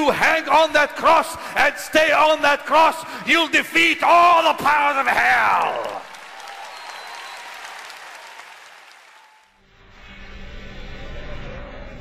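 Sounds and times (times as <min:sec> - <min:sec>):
audience applauding: 0:05.1 - 0:09.6.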